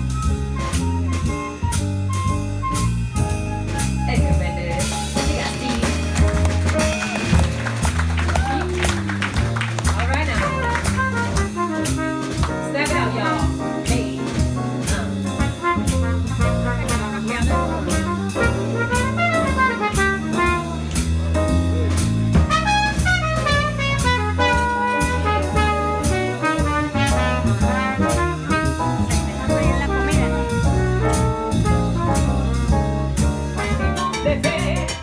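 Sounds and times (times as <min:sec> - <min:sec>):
drum kit: 0:00.0 - 0:35.0
piano: 0:00.0 - 0:35.0
trumpet solo: 0:10.2 - 0:13.2, 0:15.2 - 0:21.1, 0:22.4 - 0:34.2.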